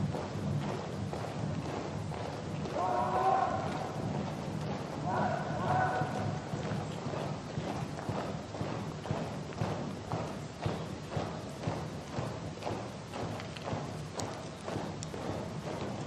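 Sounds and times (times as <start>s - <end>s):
soldiers marching on pavement: 0.0s - 16.0s.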